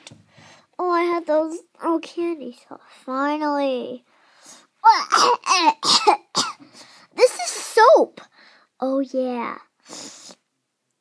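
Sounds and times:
child coughing: 4.9s - 6.8s.

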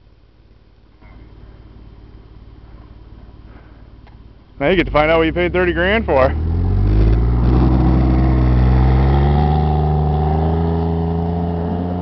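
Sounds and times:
car engine revving under load: 1.1s - 12.0s.

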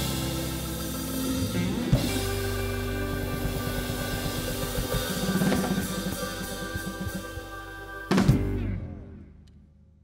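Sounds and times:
drum kit beat: 0.0s - 8.8s
electric guitars: 0.0s - 9.4s
electric bass: 0.0s - 9.6s.

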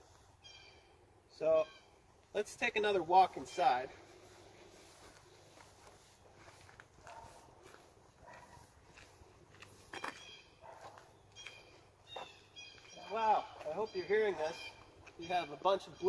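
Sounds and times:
footsteps on grass and leaves: 2.9s - 15.3s
blue jays calling: 11.3s - 16.0s.

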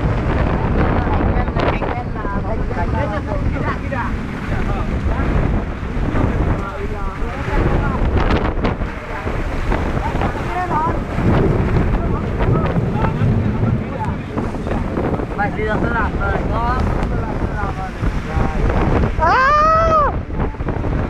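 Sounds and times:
rain: 0.0s - 21.0s
storm wind: 0.0s - 21.0s
wind gusts buffeting microphone: 0.0s - 21.0s.

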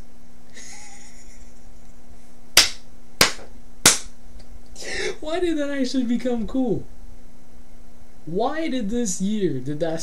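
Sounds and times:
steady low hum: 0.0s - 10.0s
man laughing breathily: 0.5s - 1.8s
sharp hand strikes: 2.6s - 4.1s.

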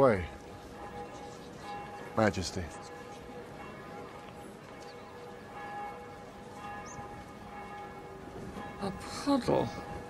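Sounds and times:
bells ringing faintly: 0.0s - 10.0s.

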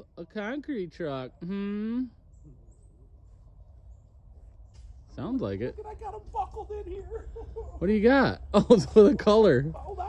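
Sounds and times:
faint bird chirps: 1.4s - 5.2s.

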